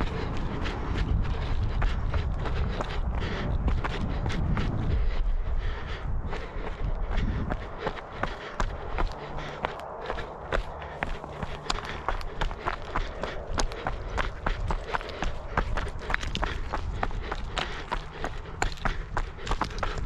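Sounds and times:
low rumble: 0.0s - 20.0s
running footsteps on stony path: 0.0s - 20.0s.

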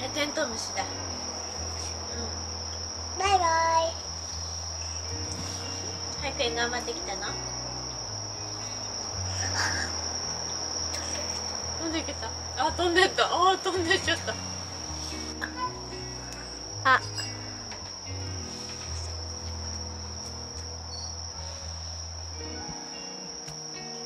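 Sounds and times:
insects trilling: 0.0s - 24.0s.

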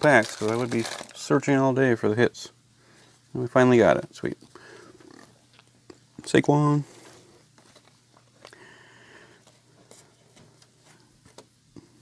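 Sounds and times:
cards being shuffled: 6.9s - 8.5s.

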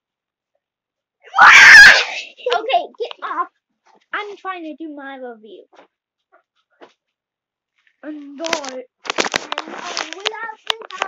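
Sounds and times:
child screaming: 1.3s - 2.2s.

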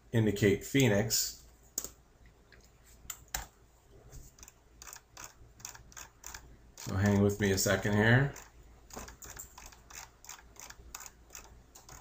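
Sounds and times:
mouse scroll wheel ticking: 4.3s - 12.0s.

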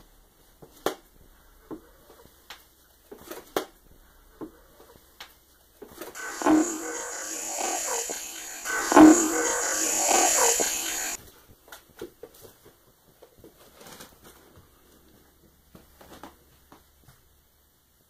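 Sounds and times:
loud hiss: 6.2s - 11.2s.

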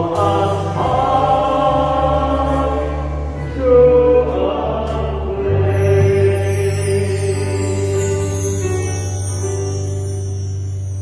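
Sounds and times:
men singing a hymn: 0.0s - 8.5s
held bass notes: 0.0s - 11.0s.

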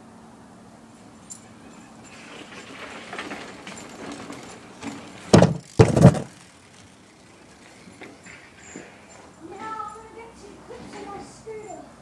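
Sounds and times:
small wheels rolling: 1.0s - 11.8s
loud bangs on a ramp: 5.3s - 6.3s.

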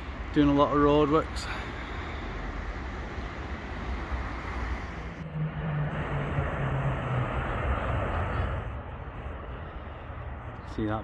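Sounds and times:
road traffic rumble: 0.0s - 11.0s
vehicle engine drone passing: 1.4s - 10.8s.

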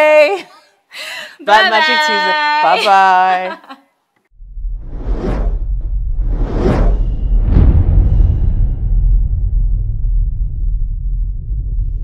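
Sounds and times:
deep bass rumble: 4.3s - 12.0s
whooshes: 4.4s - 12.0s.

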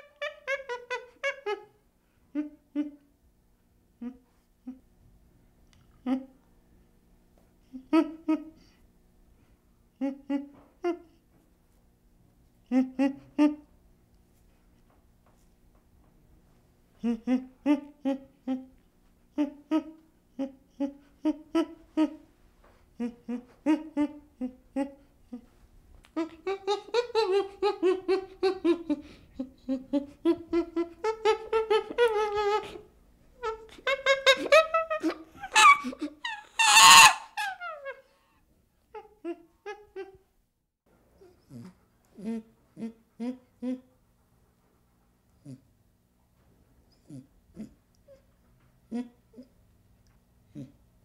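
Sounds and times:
chimpanzee pant-hoot calls: 26.1s - 38.1s.

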